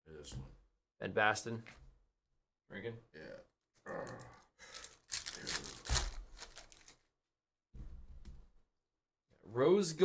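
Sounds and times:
foil wrapper tearing and crinkling: 4.7s - 7.0s.

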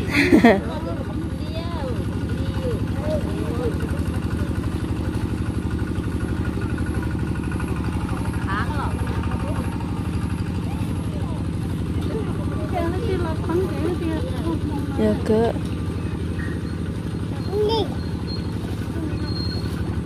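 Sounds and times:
small engine running: 0.0s - 20.0s.

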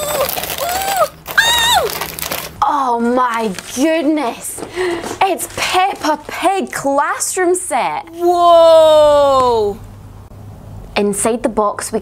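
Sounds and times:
wrapping paper ripping: 0.0s - 4.1s.

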